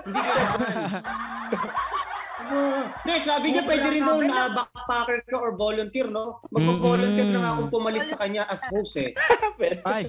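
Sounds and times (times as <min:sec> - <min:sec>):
people laughing: 0:00.0 - 0:04.9, 0:09.0 - 0:10.0.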